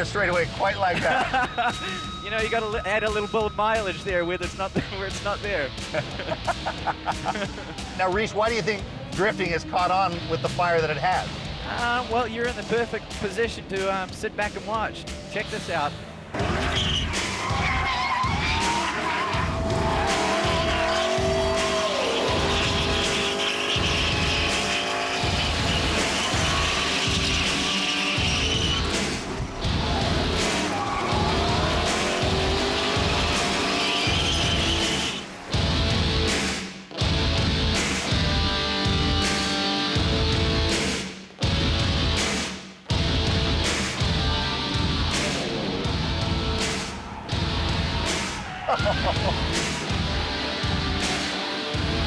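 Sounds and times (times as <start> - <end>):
background music with steady beat: 0.0 - 52.0
car engine revving: 14.5 - 40.9
tyres squealing: 16.4 - 35.4.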